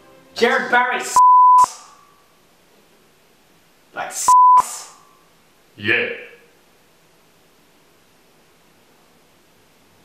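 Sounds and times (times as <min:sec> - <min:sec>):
censor bleep: 0:01.2 - 0:01.7, 0:04.3 - 0:04.7.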